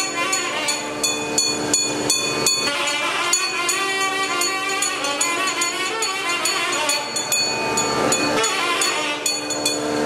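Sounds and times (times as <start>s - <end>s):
ringing and droning tones: 0.0s - 10.0s
sharp metallic strikes: 0.0s - 10.0s.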